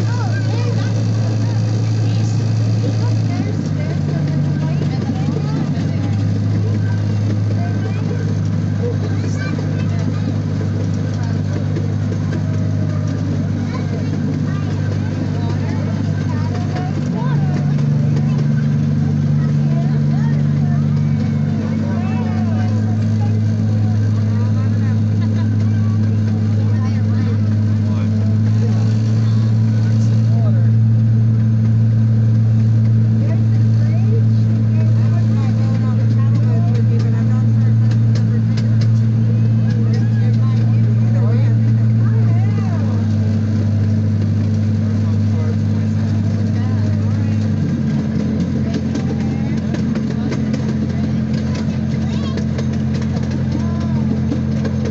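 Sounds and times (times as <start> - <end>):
background voices: 0.0 - 54.9
miniature train engine hum: 0.0 - 54.9.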